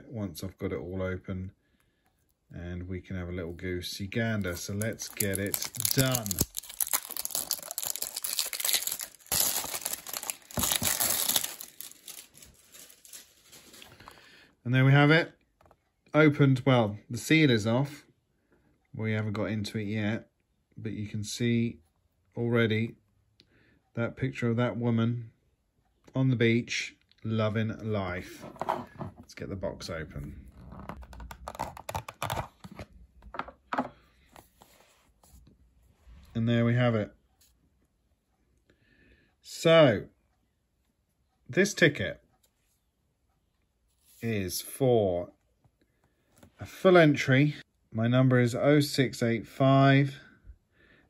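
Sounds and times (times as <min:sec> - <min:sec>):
plastic shrink-wrap tearing and crinkling: 0:04.4 - 0:13.9
cardboard box being opened: 0:09.4 - 0:11.6.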